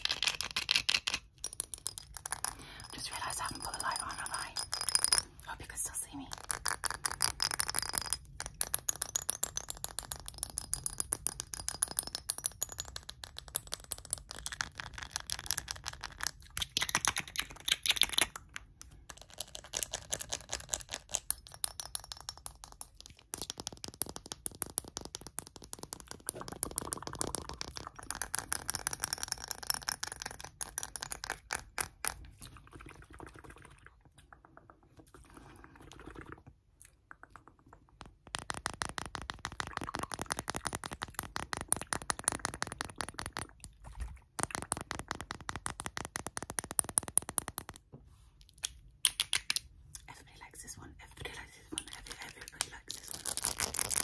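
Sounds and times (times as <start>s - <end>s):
fingernails tapping on glass bottle: 0.1s - 5.4s, 6.3s - 16.0s.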